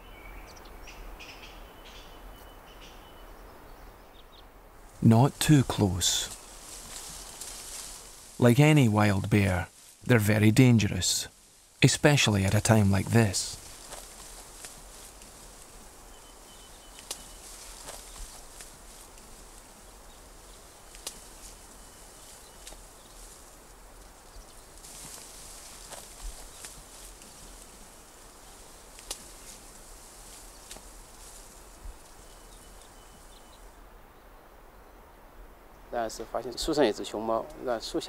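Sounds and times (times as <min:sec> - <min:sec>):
high insect-like hiss: 0:04.8 - 0:08.4, 0:12.6 - 0:36.9
bamboo stems snapping and rustling: 0:06.3 - 0:08.4, 0:13.6 - 0:15.8, 0:16.9 - 0:32.2.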